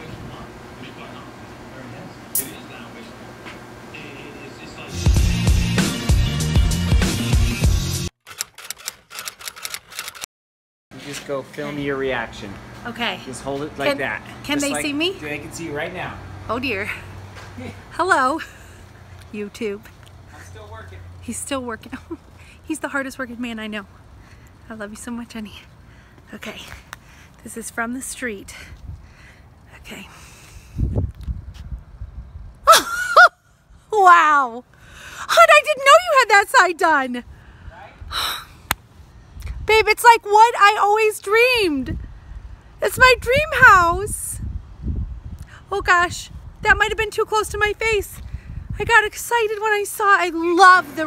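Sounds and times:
typewriter key clicks: 8.3s - 10.2s.

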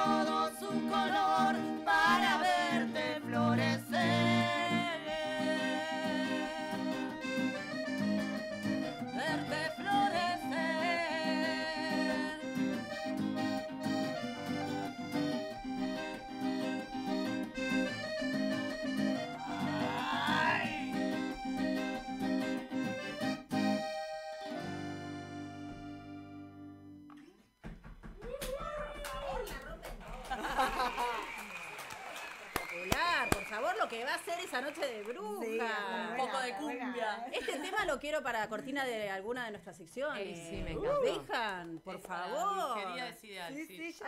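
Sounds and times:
accordion and guitar cumbia: 0.0s - 27.2s.

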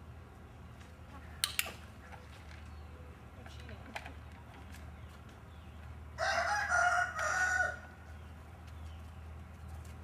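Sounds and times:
rooster crowing: 6.2s - 8.0s.

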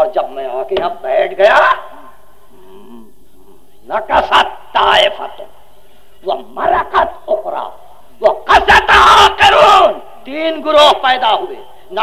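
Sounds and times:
tape hiss and hum: 0.0s - 12.0s
faint voice murmuring: 1.6s - 4.6s.

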